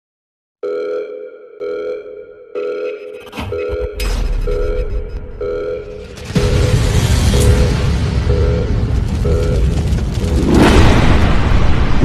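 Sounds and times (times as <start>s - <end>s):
electronic beep: 1.0s - 9.8s.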